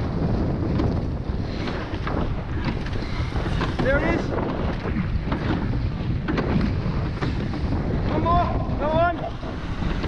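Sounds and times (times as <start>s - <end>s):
water rushing along boat hull: 0.0s - 10.0s
wind buffeting microphone: 0.0s - 10.0s.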